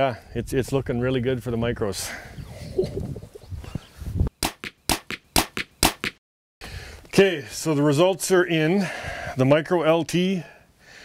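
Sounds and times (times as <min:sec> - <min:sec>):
man laughing: 0:02.7 - 0:03.4.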